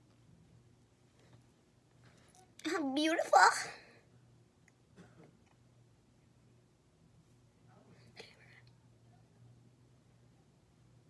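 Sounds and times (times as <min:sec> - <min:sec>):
low room hum: 0:00.0 - 0:11.0
faint whisper: 0:07.6 - 0:09.6.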